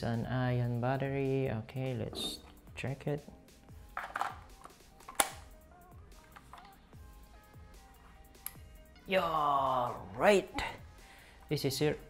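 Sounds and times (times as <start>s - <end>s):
soft background music: 0.0s - 12.0s
battery snapping in plastic click: 4.0s - 5.4s.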